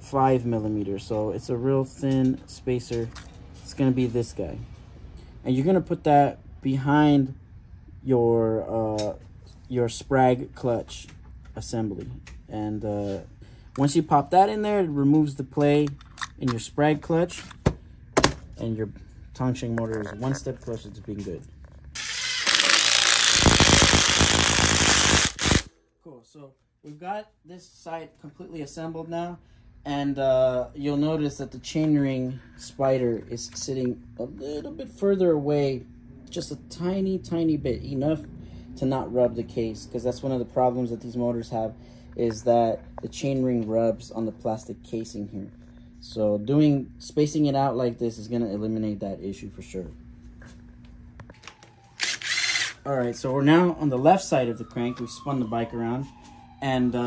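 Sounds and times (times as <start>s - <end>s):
cordless drill driving a bolt: 22.0s - 25.7s, 52.0s - 52.8s
electric screwdriver whirring: 22.0s - 25.7s, 52.0s - 52.8s.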